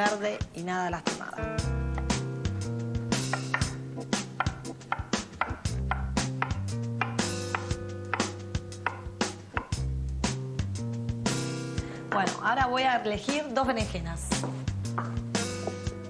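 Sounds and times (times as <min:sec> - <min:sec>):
background music with bass and guitar: 0:00.0 - 0:16.0
knife chopping on wooden board: 0:03.2 - 0:09.8, 0:14.9 - 0:15.8.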